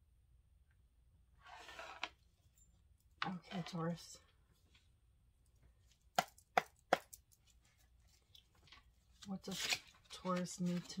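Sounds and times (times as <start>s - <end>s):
cards rustling: 7.3s - 11.0s.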